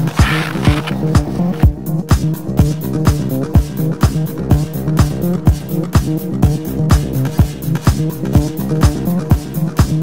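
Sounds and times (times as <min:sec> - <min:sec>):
looping bass line: 0:00.0 - 0:01.8.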